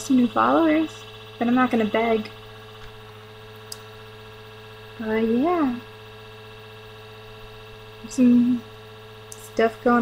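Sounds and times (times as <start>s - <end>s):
computer fan humming: 0.0s - 10.0s.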